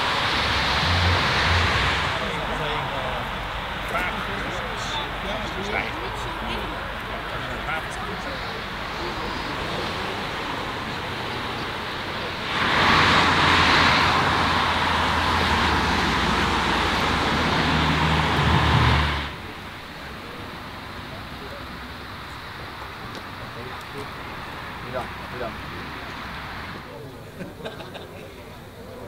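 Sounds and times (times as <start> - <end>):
people chatting: 0.0 - 17.7, 19.3 - 29.0.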